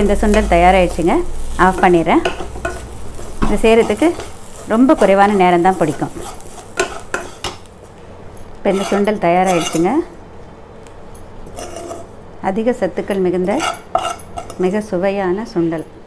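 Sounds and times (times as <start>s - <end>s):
light sizzle: 0.0s - 15.9s
spatula scraping a pan: 1.4s - 7.7s, 8.7s - 10.0s, 11.5s - 12.2s, 13.5s - 14.7s.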